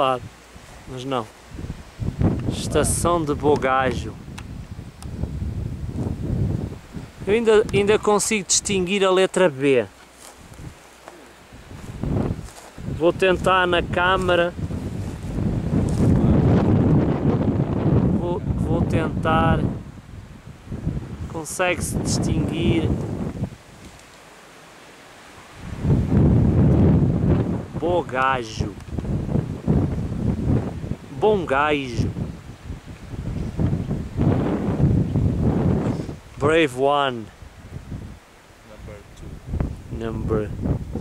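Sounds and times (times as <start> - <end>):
wind buffeting microphone: 0.0 - 8.9, 10.3 - 24.0, 25.3 - 41.0.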